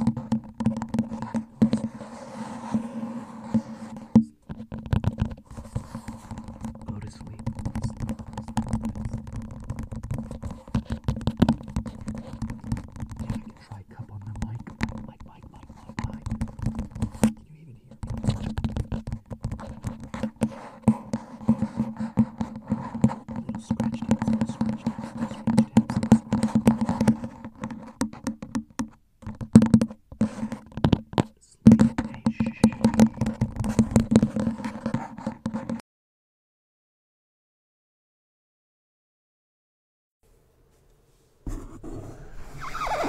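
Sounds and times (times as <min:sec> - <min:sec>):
fingers tapping on plastic cup: 0:00.0 - 0:02.0, 0:03.4 - 0:35.8.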